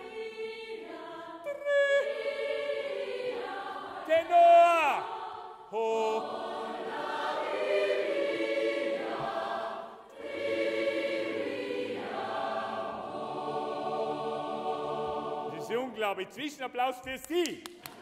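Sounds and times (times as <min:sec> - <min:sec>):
choir singing held chords: 0:00.0 - 0:16.4.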